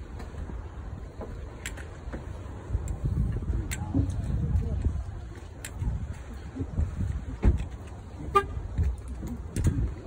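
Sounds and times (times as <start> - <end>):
low steady rumble: 0.0 - 10.0
car horn toot: 8.2 - 8.6.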